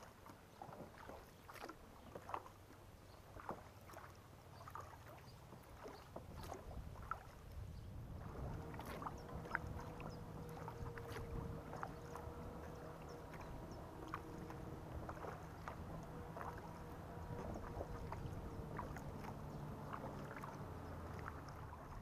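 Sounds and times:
paddle splashes and drips: 0.0s - 22.0s
low steady hum: 6.8s - 22.0s.

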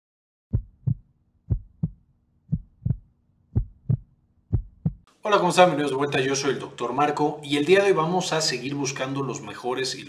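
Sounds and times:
heartbeat thumps: 0.5s - 5.1s.

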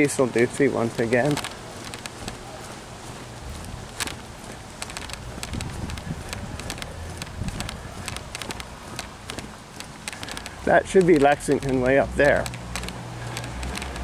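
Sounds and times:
small clicks and taps: 0.4s - 2.4s, 3.6s - 14.0s
wind rumble on microphone: 1.5s - 9.0s.

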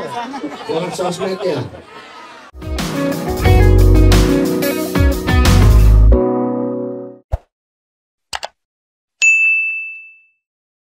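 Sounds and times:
notification bell ding: 9.2s - 10.4s.

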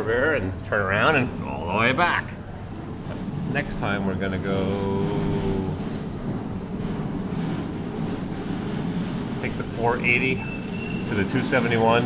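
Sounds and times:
busy indoor hall rumble: 0.0s - 12.0s
man's voice: 3.5s - 5.9s.

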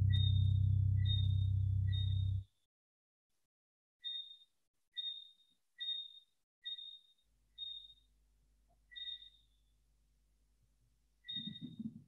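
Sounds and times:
faint low hum: 0.0s - 2.5s.

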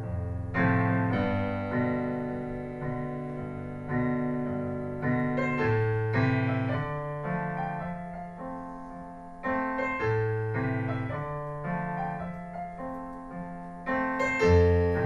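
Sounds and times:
digital piano slow chords: 0.0s - 15.0s.

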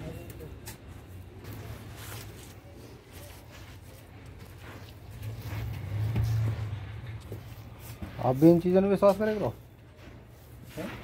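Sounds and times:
bare feet scraping on concrete: 0.6s - 11.0s.

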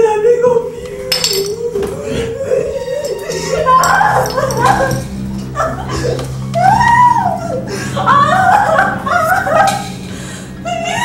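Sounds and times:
low musical drone: 0.0s - 11.0s.

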